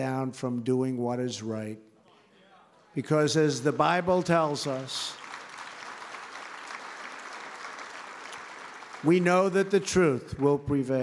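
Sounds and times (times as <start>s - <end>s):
audience applauding: 3.7s - 10.6s.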